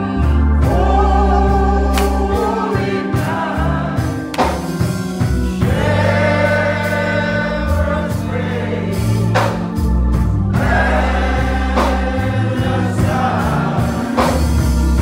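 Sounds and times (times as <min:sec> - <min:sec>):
choir singing gospel: 0:00.0 - 0:15.0
low sustained bass notes: 0:00.0 - 0:15.0.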